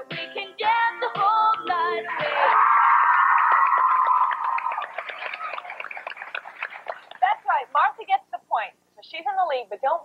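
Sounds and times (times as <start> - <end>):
studio audience clapping: 2.2 - 7.5
woman speaking: 7.2 - 10.0.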